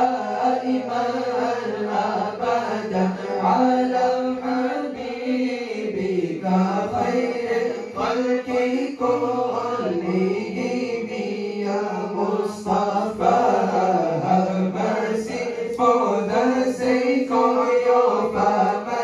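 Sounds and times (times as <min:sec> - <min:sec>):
men chanting into microphones: 0:00.0 - 0:19.0.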